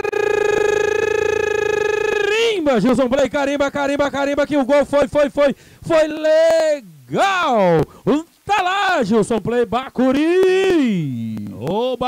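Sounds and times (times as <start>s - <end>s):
commentator shouting: 0.0s - 12.0s.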